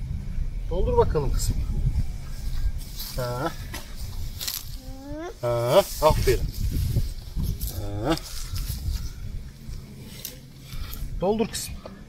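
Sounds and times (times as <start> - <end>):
small child's voice: 4.7 - 5.4.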